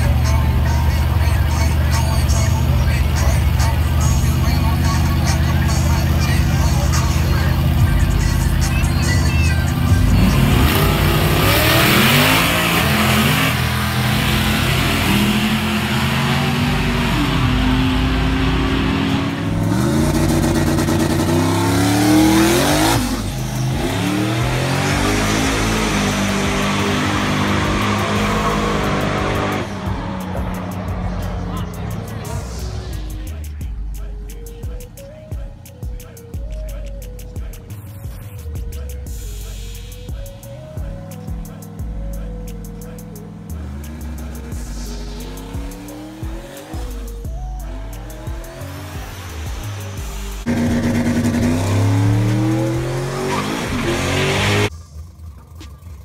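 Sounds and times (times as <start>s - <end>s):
music: 0.0s - 55.8s
drag car engines accelerating: 0.0s - 56.0s
crowd voices: 8.8s - 54.7s.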